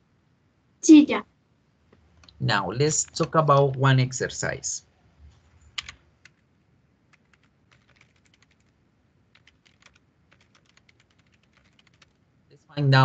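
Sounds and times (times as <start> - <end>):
typing on computer keyboard: 5.7 - 6.5, 7.1 - 12.2.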